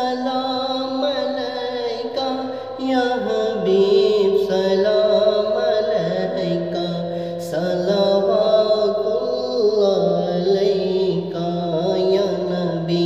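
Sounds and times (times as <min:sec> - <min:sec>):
man singing into microphone: 0:00.0 - 0:13.0.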